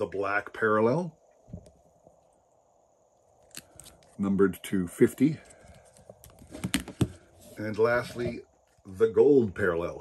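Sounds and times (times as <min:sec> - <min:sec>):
plastic card case clicks and rustles: 0:05.6 - 0:07.2.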